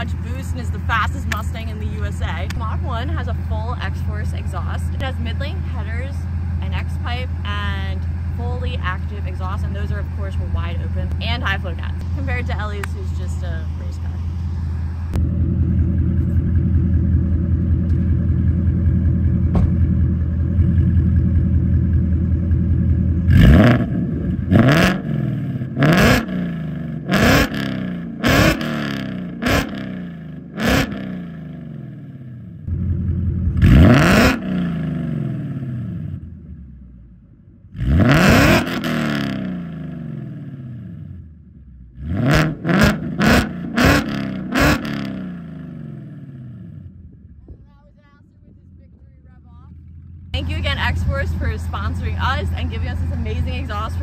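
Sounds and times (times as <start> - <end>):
car engine idling and revving: 0.0 - 54.0.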